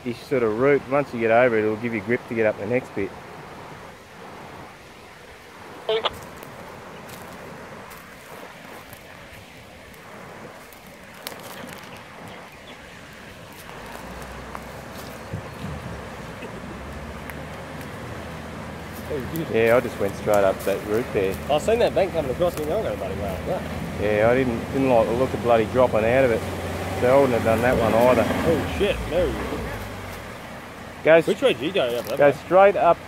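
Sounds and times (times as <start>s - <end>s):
river running over rocks: 0.0s - 33.0s
vehicle engine rumble: 0.0s - 33.0s.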